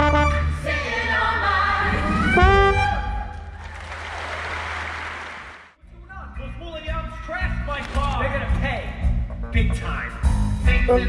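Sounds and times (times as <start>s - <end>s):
orchestra with brass: 0.0s - 3.3s
audience applause: 3.3s - 5.8s.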